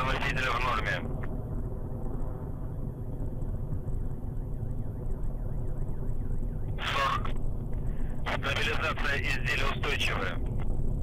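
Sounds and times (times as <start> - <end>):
rocket engine rumble: 0.0 - 11.0.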